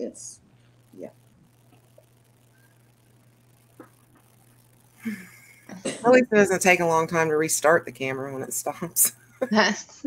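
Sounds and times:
woman speaking: 0.0 - 0.4, 5.7 - 10.0
faint electrical hum: 0.0 - 10.0
woman laughing: 5.0 - 6.0.

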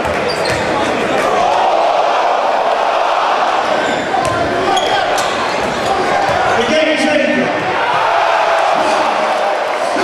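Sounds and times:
crowd chattering in a hall: 0.0 - 10.0.

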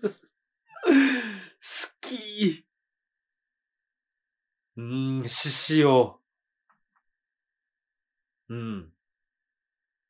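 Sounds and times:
man sighing: 0.7 - 1.8.

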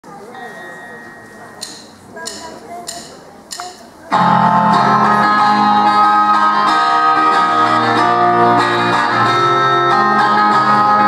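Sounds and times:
faint murmuring voices: 0.0 - 10.0
drumstick count-in clicks: 1.6 - 3.9.

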